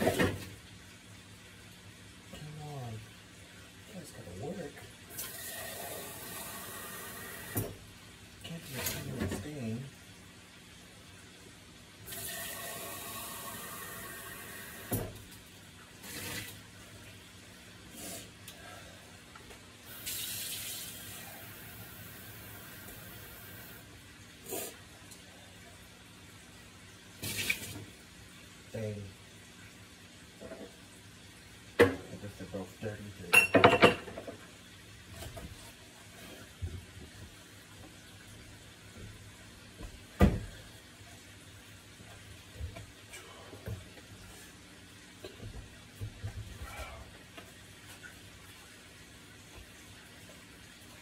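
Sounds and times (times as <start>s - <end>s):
kitchen tap running: 5.0s - 7.9s, 12.0s - 17.2s, 19.8s - 25.2s, 27.2s - 28.0s.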